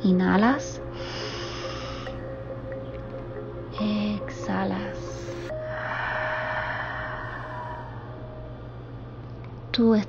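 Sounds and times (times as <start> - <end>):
soft ambient music: 0.0 - 10.0
person breathing in: 0.9 - 2.2, 5.5 - 8.4.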